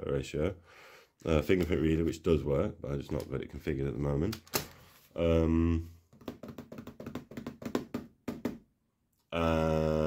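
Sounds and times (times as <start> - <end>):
fingertips tapping on laptop lid: 6.2 - 8.6.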